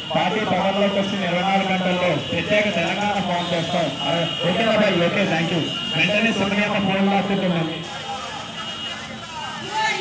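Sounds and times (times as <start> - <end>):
faint voices talking: 0.0 - 10.0
outdoor background noise: 0.0 - 10.0.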